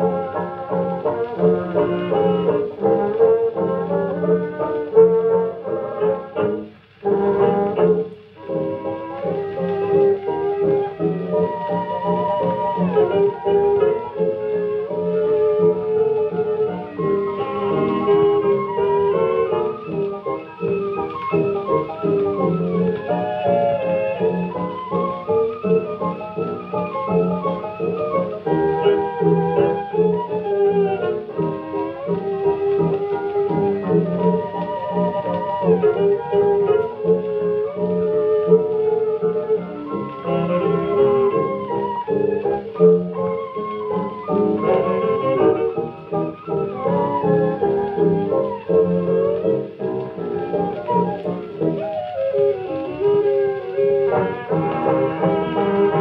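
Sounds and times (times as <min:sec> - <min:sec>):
jazz dance band recording: 0:00.0 - 0:56.0.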